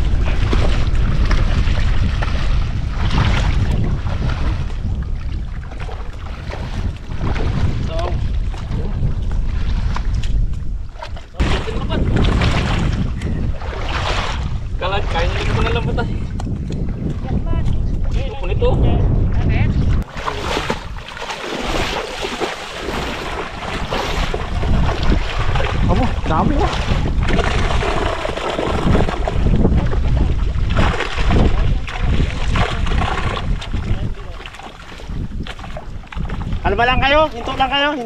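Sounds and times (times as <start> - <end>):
shallow water sloshing: 0.0 - 18.5, 19.9 - 38.0
wind buffeting microphone: 0.0 - 38.0.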